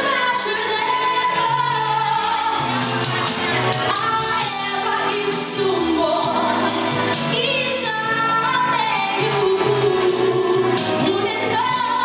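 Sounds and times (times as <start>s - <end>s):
woman singing into microphone: 0.0s - 3.1s, 3.8s - 12.0s
backing music track: 0.0s - 12.0s.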